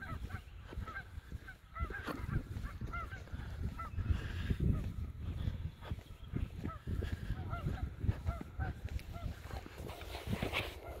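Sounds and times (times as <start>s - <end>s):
distant bird honking calls: 0.0s - 11.0s
footsteps crunching over dirt: 0.0s - 11.0s
wind rumble on microphone: 0.0s - 11.0s.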